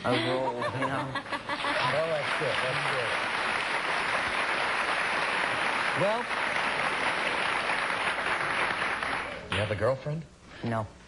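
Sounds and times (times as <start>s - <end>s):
audience applauding: 1.4s - 9.5s.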